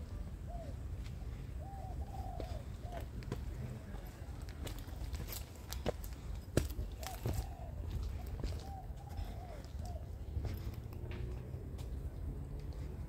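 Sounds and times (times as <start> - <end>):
dove cooing: 0.0 - 4.0, 6.8 - 10.6.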